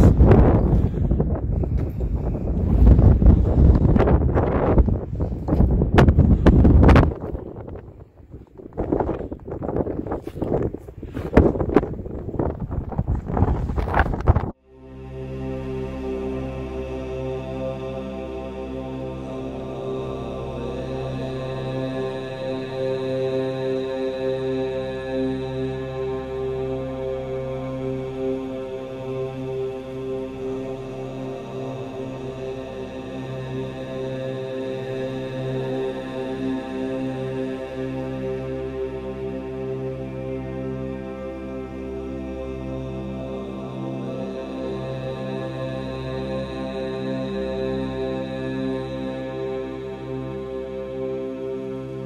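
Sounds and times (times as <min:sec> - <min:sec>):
wind buffeting microphone: 0:00.0 - 0:14.6
droning music of held tones: 0:13.8 - 0:52.0.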